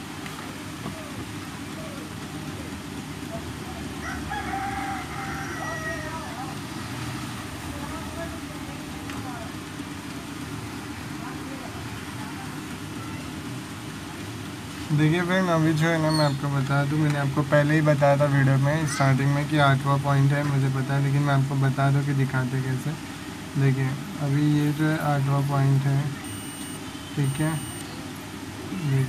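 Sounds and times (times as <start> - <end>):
low background noise: 0.0 - 29.0.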